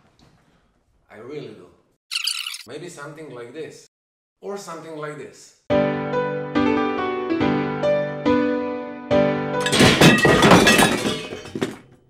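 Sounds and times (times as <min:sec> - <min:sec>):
glass shattering crash: 0:09.6 - 0:12.0.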